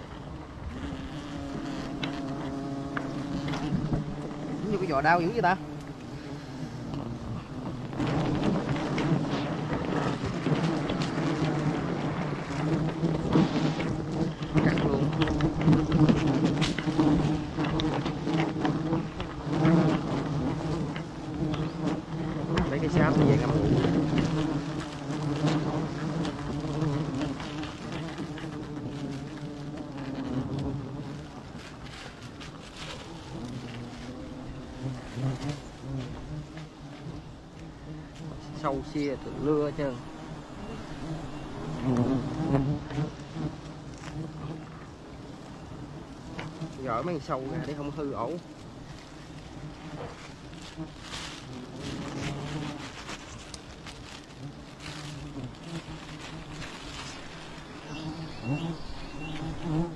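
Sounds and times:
bees buzzing: 0.0s - 59.9s.

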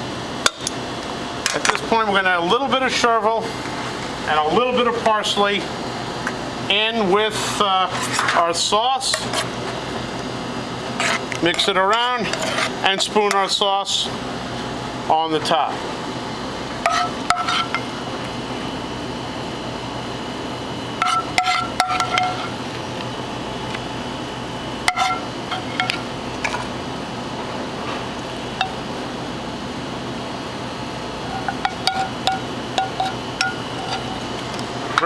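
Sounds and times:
steady background hum: 0.0s - 35.0s.

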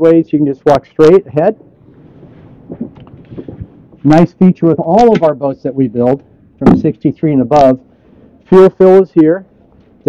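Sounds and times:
wind on microphone: 1.6s - 5.4s, 6.2s - 7.2s.

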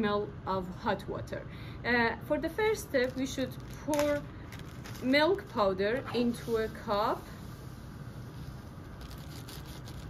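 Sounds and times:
plastic crinkles: 2.9s - 5.7s, 9.0s - 10.0s
plastic bag rustling: 3.0s - 5.8s.

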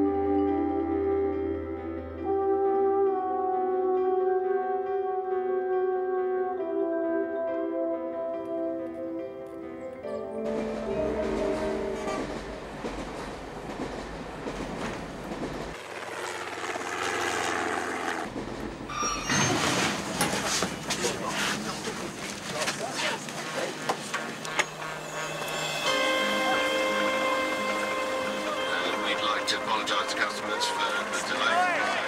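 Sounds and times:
train rumbling on rails: 10.3s - 15.8s, 18.3s - 32.0s
steady held tones: 24.5s - 32.0s.

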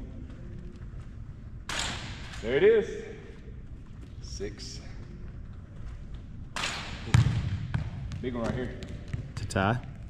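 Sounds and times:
gym hum: 0.0s - 10.0s.

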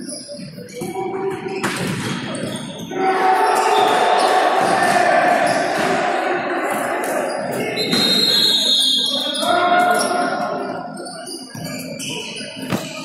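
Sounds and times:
echoing voices: 0.0s - 13.0s.

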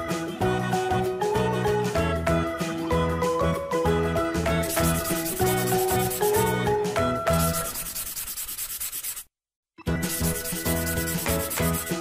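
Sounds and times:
light background music: 0.0s - 8.2s, 9.8s - 12.0s
marker scratching on paper: 4.6s - 6.6s, 7.3s - 9.3s, 10.1s - 12.0s.

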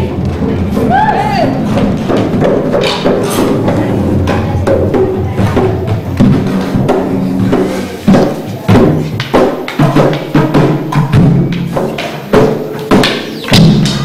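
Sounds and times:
hand drums playing dance rhythm: 0.0s - 14.0s
loud drum strokes: 0.0s - 14.0s
voices over drumming: 0.0s - 14.0s.

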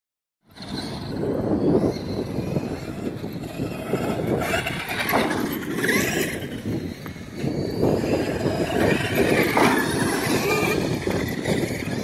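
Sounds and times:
tyres on dirt: 0.5s - 12.0s
electric motor whine: 0.6s - 12.0s.

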